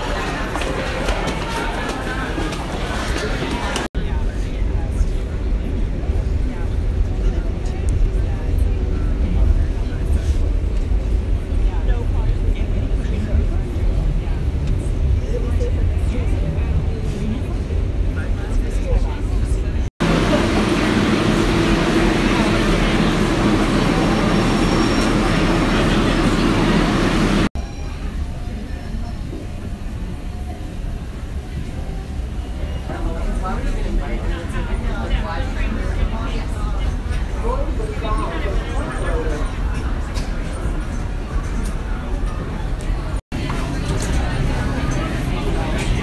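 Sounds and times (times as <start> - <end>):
faint passenger voices: 0.0 - 46.0
subway train rumbling: 0.0 - 46.0.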